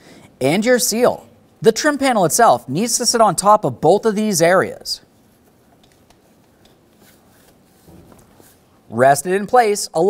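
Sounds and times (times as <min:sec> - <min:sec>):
soft thump: 0:07.9 - 0:08.4.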